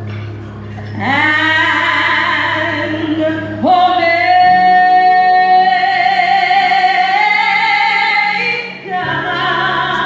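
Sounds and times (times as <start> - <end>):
woman singing: 1.0 - 10.0.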